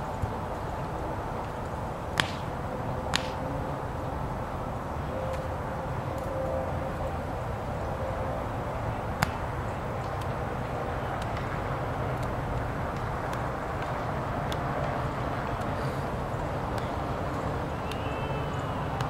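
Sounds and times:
volleyball hit slap: 0:02.2 - 0:02.5, 0:03.1 - 0:03.4.

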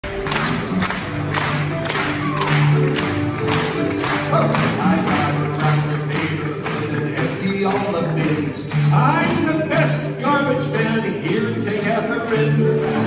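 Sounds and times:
audience clapping along: 0:00.0 - 0:13.0
piano playing hoedown vamp: 0:00.0 - 0:13.0.

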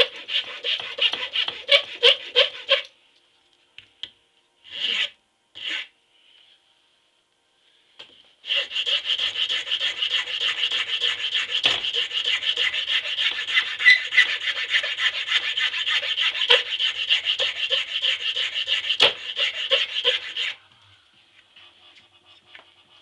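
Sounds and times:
hand file rasping: 0:00.0 - 0:02.9, 0:04.7 - 0:05.9, 0:08.4 - 0:20.6.

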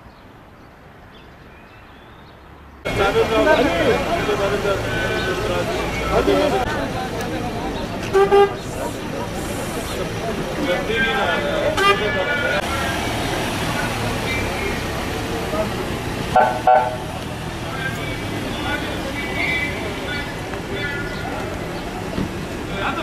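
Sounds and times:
scattered voices: 0:02.9 - 0:23.0
van engine running: 0:02.9 - 0:23.0
vehicle horn tooting: 0:08.1 - 0:08.6, 0:11.7 - 0:12.6, 0:16.4 - 0:17.1.

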